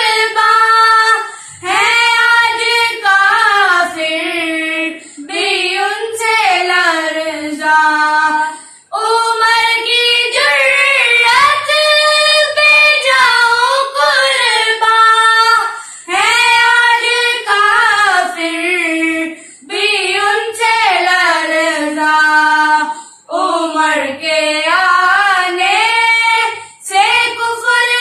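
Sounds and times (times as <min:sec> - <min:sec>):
children singing unaccompanied: 0:00.0 - 0:28.0.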